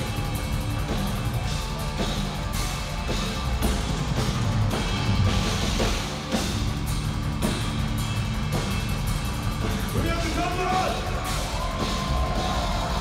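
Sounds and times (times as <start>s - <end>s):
distorted electric guitars: 0.0s - 13.0s
drum kit: 0.0s - 13.0s.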